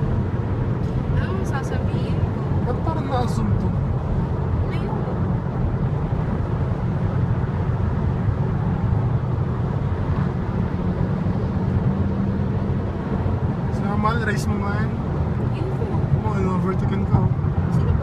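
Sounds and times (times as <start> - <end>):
car road and engine noise: 0.0 - 18.0.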